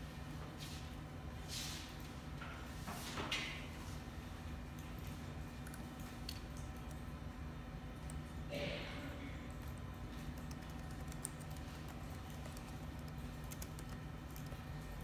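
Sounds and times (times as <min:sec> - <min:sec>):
low room hum: 0:00.0 - 0:15.0
keyboard and mouse clicking: 0:10.3 - 0:14.6.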